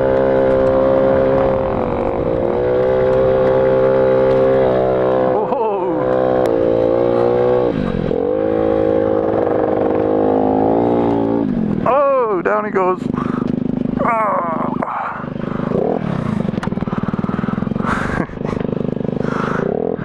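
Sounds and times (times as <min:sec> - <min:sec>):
small motorcycle engine running: 0:00.0 - 0:20.0
voices shouting or laughing: 0:05.3 - 0:06.1.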